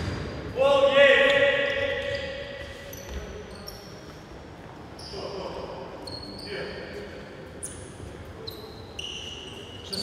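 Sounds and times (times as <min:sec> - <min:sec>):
basketball shoes squeaking: 0:00.0 - 0:00.5, 0:01.7 - 0:06.7, 0:07.6 - 0:10.0
echoing sports hall noise: 0:00.0 - 0:10.0.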